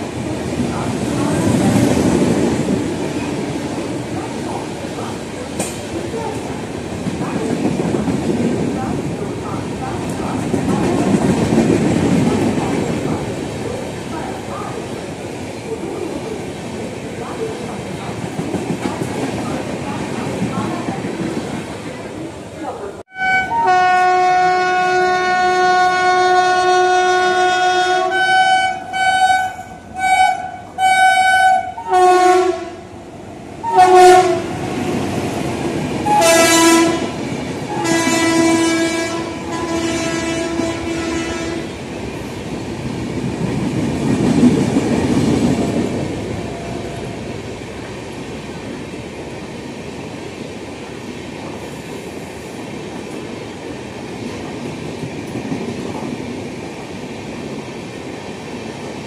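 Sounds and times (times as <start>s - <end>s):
train coaches rumbling past: 0.0s - 59.0s
locomotive horn blasts: 23.1s - 32.8s, 33.6s - 34.6s, 36.1s - 41.7s.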